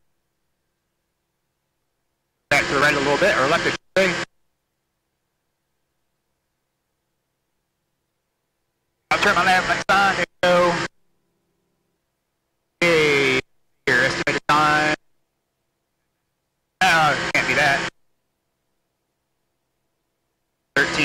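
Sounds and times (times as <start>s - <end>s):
person speaking short phrases: 12.8s - 15.0s, 16.8s - 17.9s, 20.8s - 21.0s.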